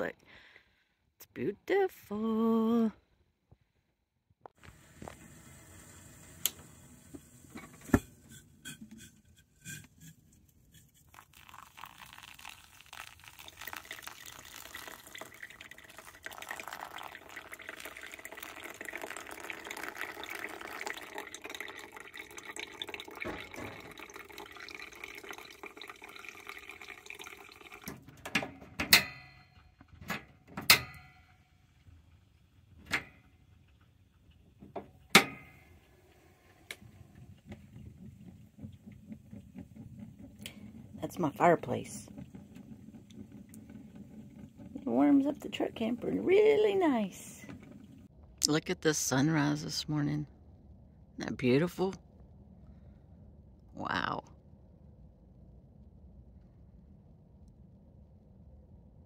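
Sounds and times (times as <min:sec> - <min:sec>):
water trickling through coffee grounds: 0:04.6 - 0:28.2, 0:31.8 - 0:48.6.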